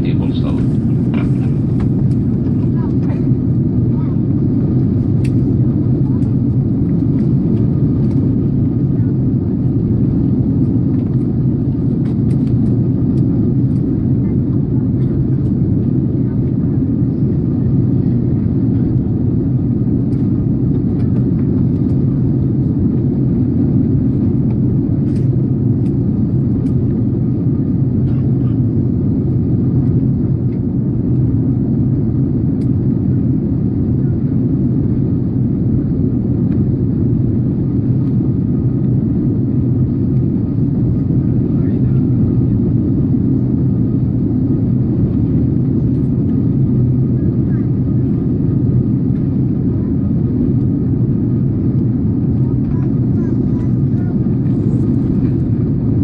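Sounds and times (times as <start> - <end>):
airliner cabin rumble: 0.0 - 56.0.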